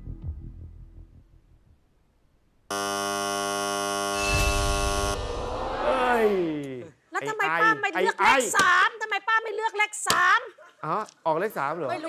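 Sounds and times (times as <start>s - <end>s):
game show buzzer: 2.7s - 5.3s
low rumble: 4.4s - 6.4s.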